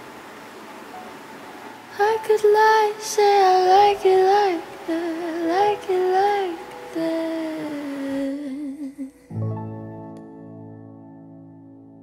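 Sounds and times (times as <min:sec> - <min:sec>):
woman singing wordless melody: 0:01.7 - 0:09.7.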